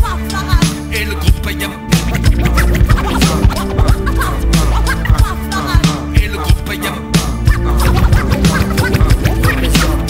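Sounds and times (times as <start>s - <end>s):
hip hop bass beat and drums: 0.0s - 10.0s
turntable scratching: 2.0s - 5.3s, 7.5s - 10.0s.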